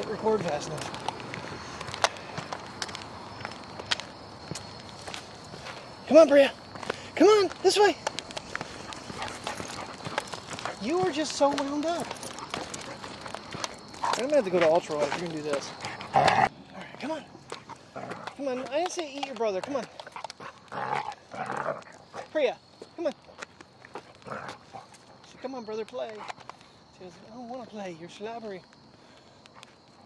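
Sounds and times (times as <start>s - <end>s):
quick footsteps on pavement: 0.0s - 30.0s
dog claws clicking: 8.0s - 16.4s
dog growling: 15.9s - 16.5s, 17.7s - 18.4s, 20.4s - 22.0s, 24.2s - 24.9s.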